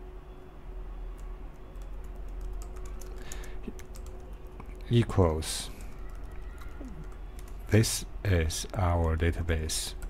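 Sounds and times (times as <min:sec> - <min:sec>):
typing on keyboard: 0:01.1 - 0:04.7, 0:05.8 - 0:07.7.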